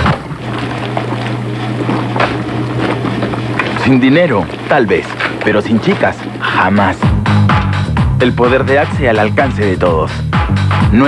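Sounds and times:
low hum: 0.0 - 8.8.

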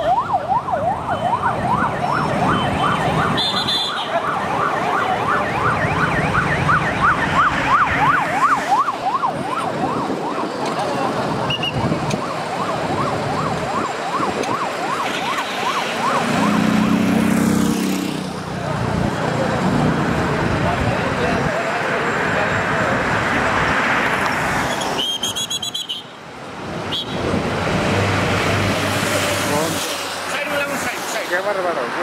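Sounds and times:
siren sweeping up and down: 0.0 - 18.4
cars and motorcycles passing: 0.0 - 32.0.

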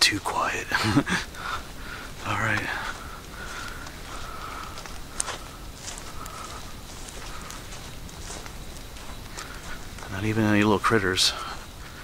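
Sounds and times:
footsteps on sandy dirt road: 0.0 - 12.0.

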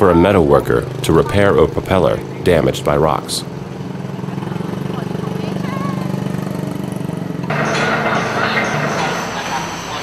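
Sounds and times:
small engine idling: 0.1 - 10.0.

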